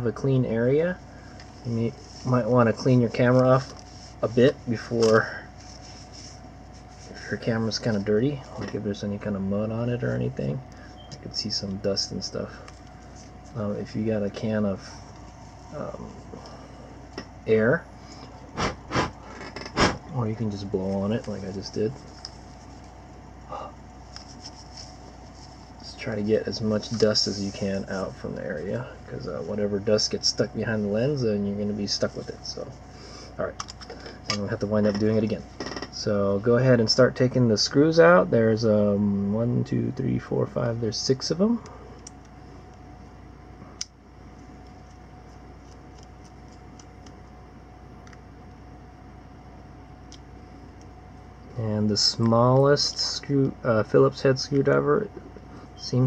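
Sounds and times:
low steady hum: 0.0s - 56.0s
cloth rubbing on plastic: 1.5s - 8.2s, 24.0s - 28.1s.

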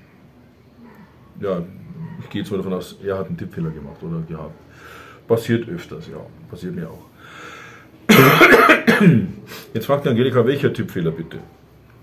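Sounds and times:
man breathing in softly: 4.7s - 5.3s, 7.1s - 8.0s
man coughing loudly: 8.1s - 9.5s.

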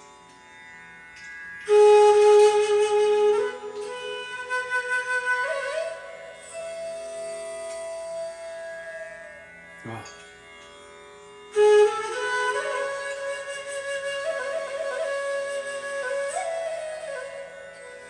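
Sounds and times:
bamboo flute melody: 1.6s - 9.4s, 11.5s - 18.0s.

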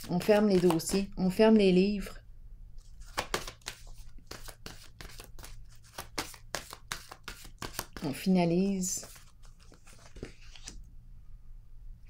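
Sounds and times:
cards being shuffled: 0.0s - 1.2s, 2.8s - 10.8s.

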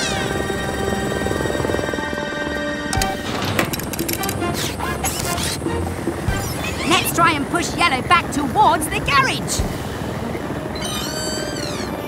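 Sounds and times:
cartoon background music: 0.0s - 9.6s, 10.7s - 12.0s
mechanical sound effects: 3.0s - 5.7s.

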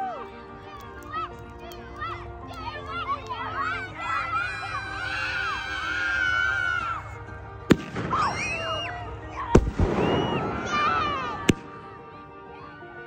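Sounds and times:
firework bangs: 7.6s - 11.9s
firework crackling: 7.6s - 11.9s
high wavering firework squeals: 8.1s - 11.5s.

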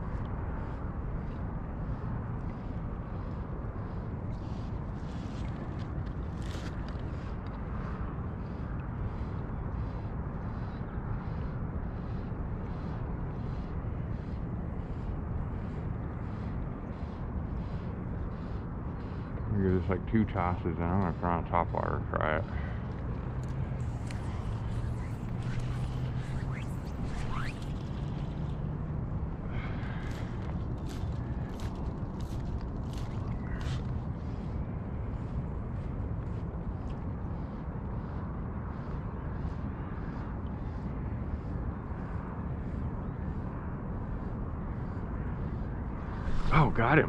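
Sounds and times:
low hum: 0.0s - 47.0s.

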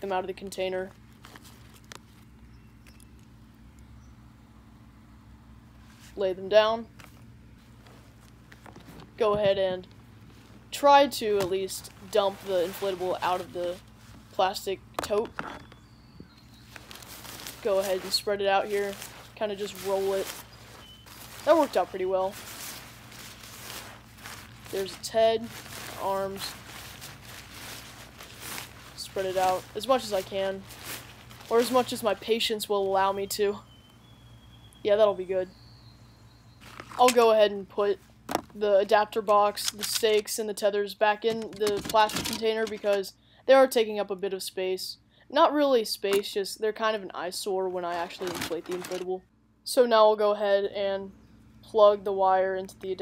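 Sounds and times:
low steady background rumble: 0.0s - 53.0s
soft clicks and rustles: 15.0s - 32.3s.

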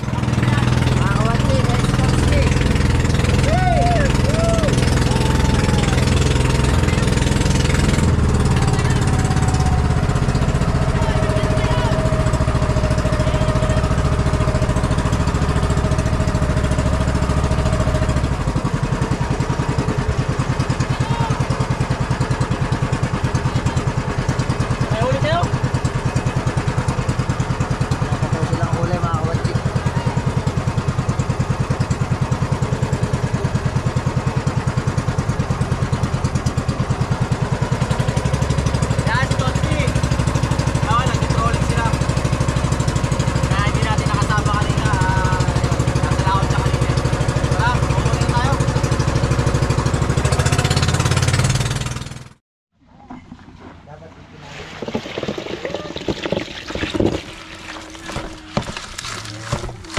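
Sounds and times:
boat engine running and idling: 0.0s - 59.9s.

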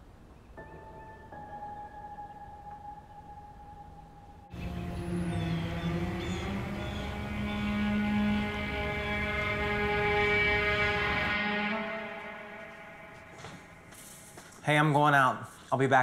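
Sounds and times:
ominous film score: 0.6s - 14.4s
droning sustained tones: 1.3s - 14.3s.

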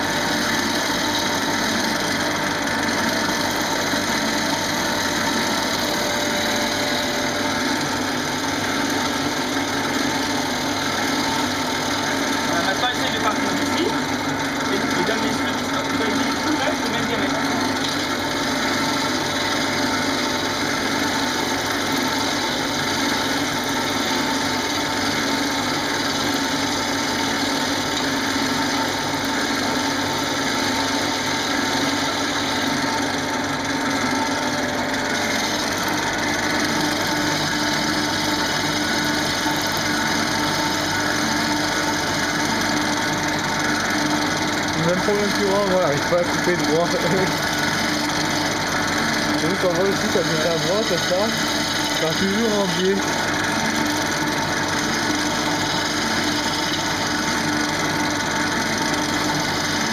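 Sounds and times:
gouge scraping spinning wood: 0.0s - 59.9s
lathe motor hum: 0.0s - 59.9s.

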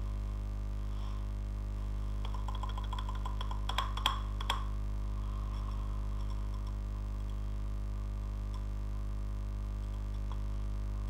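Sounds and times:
electrical hum: 0.0s - 11.0s
keyboard typing: 2.2s - 4.6s.

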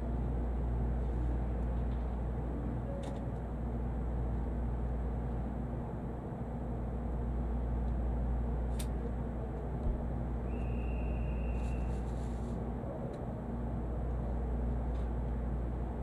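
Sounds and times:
train low hum: 0.0s - 16.0s.

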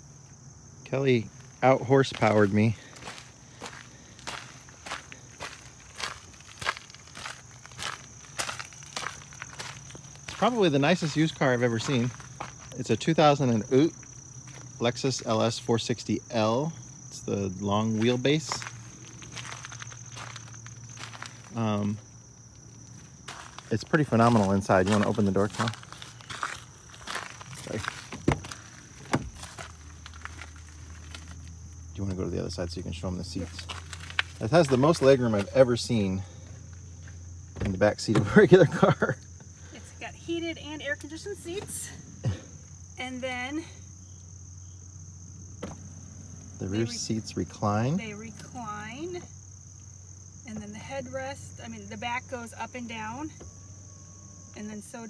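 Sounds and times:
footsteps on gravel: 1.2s - 14.8s, 16.6s - 39.0s.

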